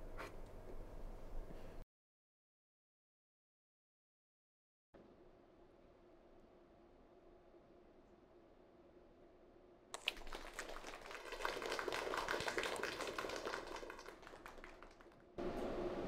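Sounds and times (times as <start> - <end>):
crowd applauding: 10.0 - 15.4.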